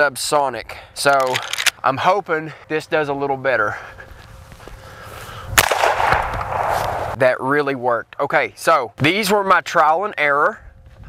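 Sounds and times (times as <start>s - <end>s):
echo tail: 5.5s - 7.2s
suppressed rifle shot: 5.6s - 7.2s.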